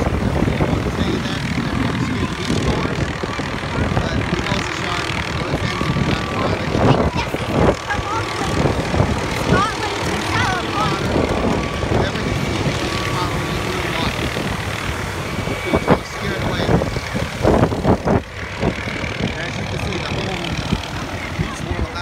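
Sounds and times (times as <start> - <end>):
helicopter hovering: 0.0 - 22.0
outdoor noise: 0.0 - 22.0.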